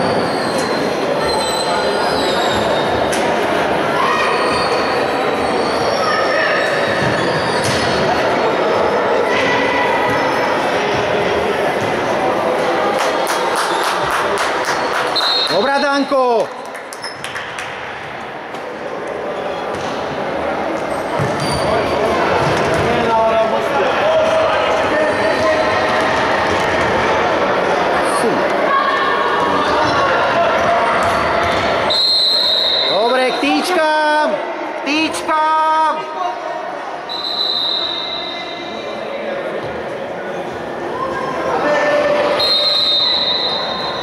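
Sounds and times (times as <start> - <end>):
referee's whistle blasts: 15.2 - 15.9, 31.9 - 33.2, 37.1 - 38.7, 42.3 - 44.0
ball kicked and bouncing: 21.2 - 21.5.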